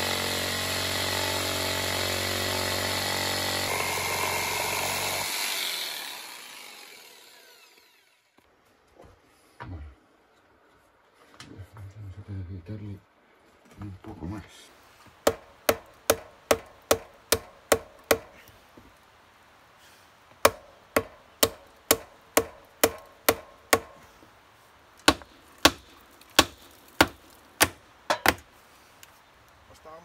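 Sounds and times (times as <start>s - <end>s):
hammer blows on timber: 20.4s - 24.1s.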